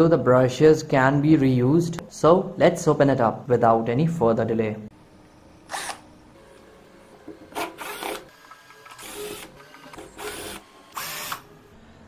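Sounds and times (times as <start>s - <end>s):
cordless drill bursts: 5.7s - 6.0s, 7.6s - 11.5s.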